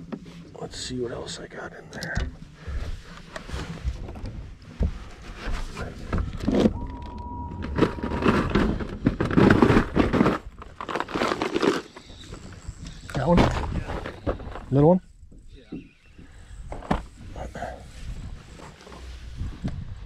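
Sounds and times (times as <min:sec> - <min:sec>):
plastic boxes clattering: 0:06.2 - 0:11.9.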